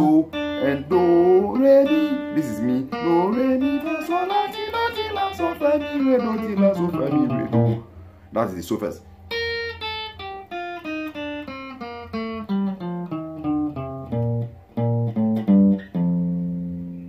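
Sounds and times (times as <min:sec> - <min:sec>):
clean electric guitar melody: 0:00.0 - 0:08.0, 0:09.2 - 0:17.0.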